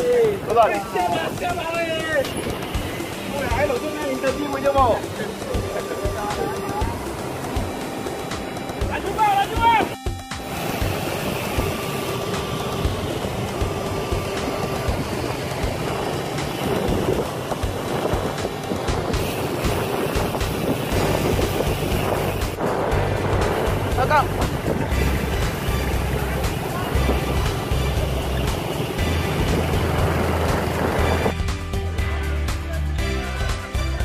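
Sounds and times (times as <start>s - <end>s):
road and traffic noise: 0.0s - 34.0s
wind rushing over microphone: 9.8s - 31.4s.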